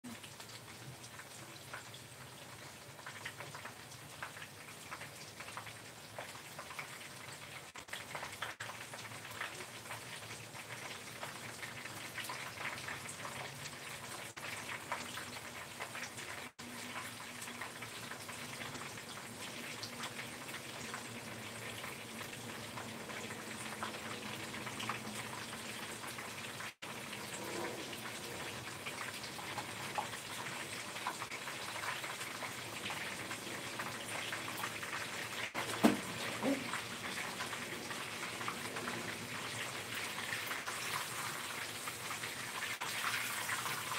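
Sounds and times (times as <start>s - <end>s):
food frying in hot oil: 0.0s - 43.9s.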